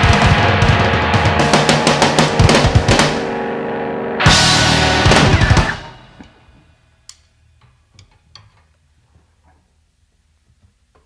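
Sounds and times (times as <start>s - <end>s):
rock band final hits: 0.0s - 6.7s.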